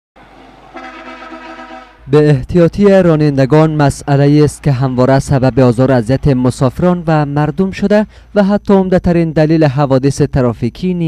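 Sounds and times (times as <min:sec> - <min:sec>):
road traffic noise: 0:00.2 - 0:09.4
vehicle horn long blast: 0:00.7 - 0:02.1.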